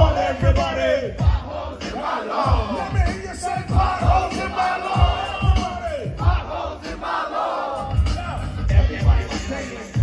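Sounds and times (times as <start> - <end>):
crowd shouting along: 0.0 - 9.9
live hip hop music: 0.0 - 10.0.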